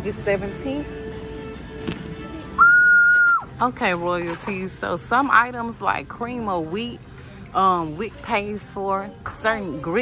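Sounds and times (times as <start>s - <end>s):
loud high whistle: 2.6s - 3.5s.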